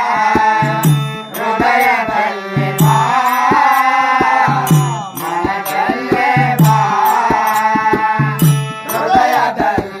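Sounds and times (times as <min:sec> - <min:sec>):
harmonium chords: 0:00.0 - 0:10.0
tabla strokes: 0:00.0 - 0:10.0
small hand cymbals chiming: 0:00.6 - 0:09.6
man singing: 0:01.4 - 0:10.0.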